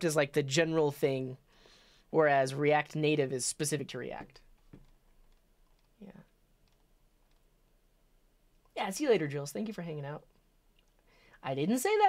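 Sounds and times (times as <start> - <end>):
faint clicks: 4.3 - 7.5, 10.3 - 11.1.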